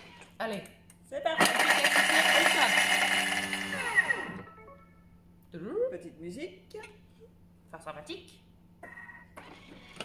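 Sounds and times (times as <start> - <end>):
food processor blade whirring: 1.4 - 4.5.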